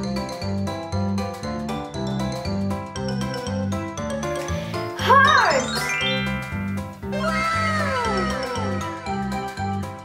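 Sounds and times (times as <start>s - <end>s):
upbeat children's music: 0.0s - 10.0s.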